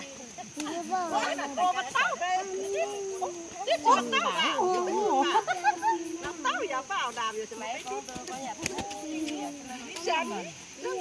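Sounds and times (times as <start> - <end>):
faint high hiss: 0.0 - 11.0
women talking and calling out: 0.0 - 11.0.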